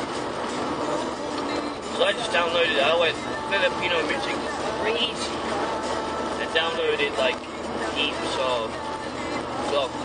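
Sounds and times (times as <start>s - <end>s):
road and tyre noise inside car: 0.0s - 10.0s.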